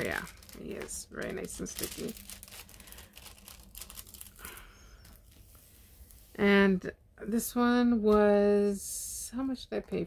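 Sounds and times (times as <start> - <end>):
plastic film crinkling: 0.0 - 6.2.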